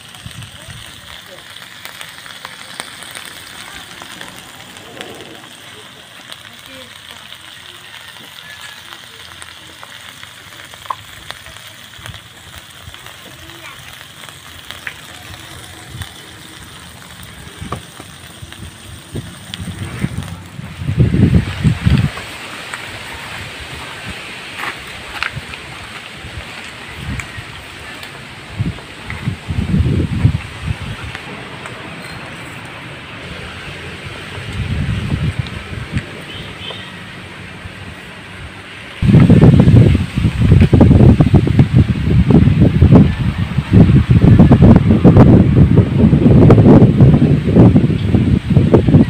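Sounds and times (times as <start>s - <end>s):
heavy low rumbling: 0.0s - 7.3s, 10.3s - 49.0s
crabs sizzling in hot oil: 0.0s - 49.0s.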